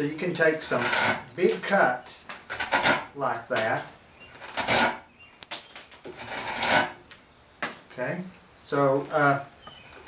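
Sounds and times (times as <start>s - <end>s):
drawknife cutting wood: 2.5s - 3.1s, 4.5s - 5.0s, 6.2s - 7.0s.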